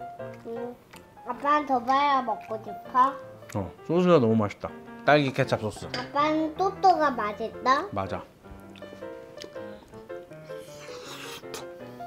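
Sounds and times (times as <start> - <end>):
light background music: 0.0 - 12.0
crunchy biting and chewing: 8.6 - 11.7.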